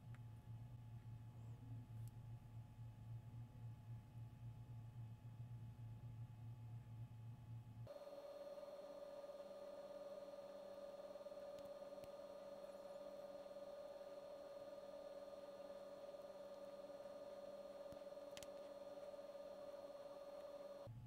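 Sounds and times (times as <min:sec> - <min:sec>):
faint steady hum: 0:00.0 - 0:21.0
higher steady hum tone: 0:07.9 - 0:21.0.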